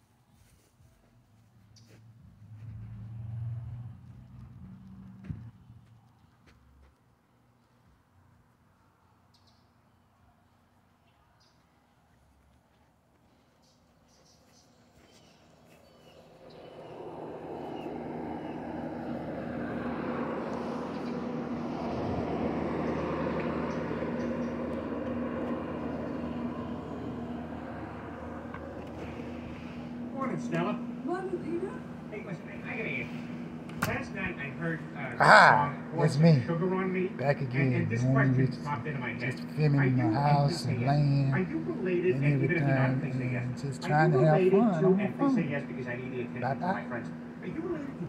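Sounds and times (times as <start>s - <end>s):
passing vehicle engine hum: 0.9s - 7.6s, 14.9s - 48.0s.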